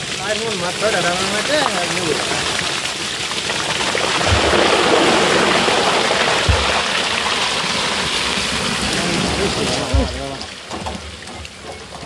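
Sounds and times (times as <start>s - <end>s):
water gushing into a tank: 0.0s - 12.0s
short low thumps: 6.4s - 7.2s.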